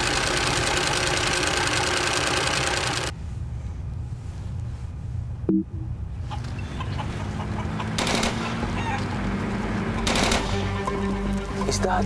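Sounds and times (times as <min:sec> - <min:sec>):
low hum: 0:03.1 - 0:06.3
short tone: 0:05.5 - 0:05.9
chickens clucking: 0:06.2 - 0:09.2
distant automatic gunfire: 0:07.9 - 0:08.7, 0:10.0 - 0:10.8.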